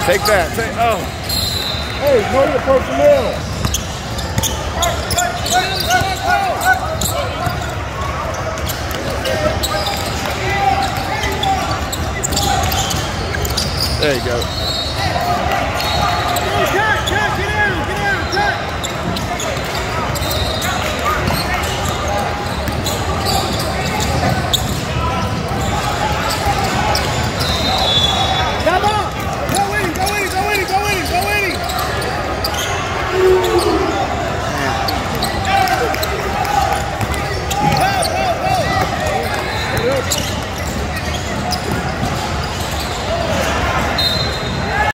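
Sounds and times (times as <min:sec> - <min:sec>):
sneakers squeaking: 0:00.0 - 0:44.9
babble of voices: 0:04.2 - 0:44.9.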